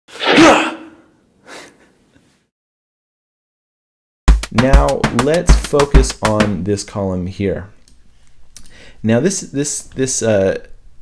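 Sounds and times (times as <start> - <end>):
man sneezing: 0.2 - 1.1.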